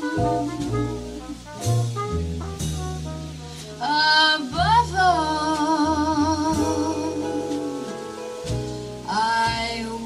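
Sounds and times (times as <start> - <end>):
jazz lead melody with vibrato: 0.0 - 10.0
upright bass notes: 0.0 - 10.0.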